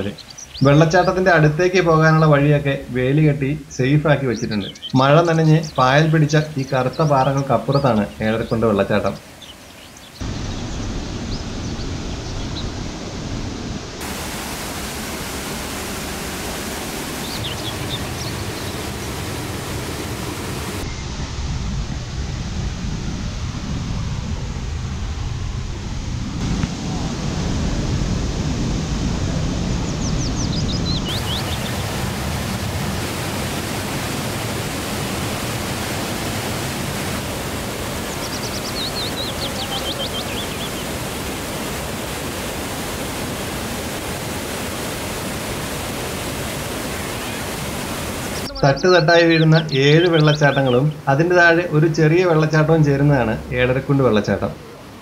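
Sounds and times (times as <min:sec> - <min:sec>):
waterfall roaring over rock: 0:00.0 - 0:55.0
high chirps: 0:30.2 - 0:31.9, 0:38.1 - 0:41.0, 0:48.2 - 0:51.1.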